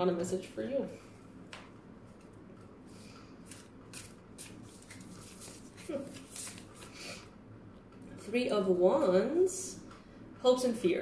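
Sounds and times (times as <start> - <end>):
cards being shuffled: 3.4 - 7.1.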